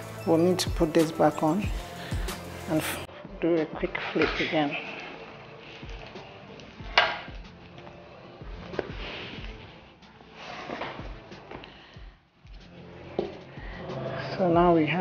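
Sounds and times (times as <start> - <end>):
quiet background music with beat: 0.0 - 15.0.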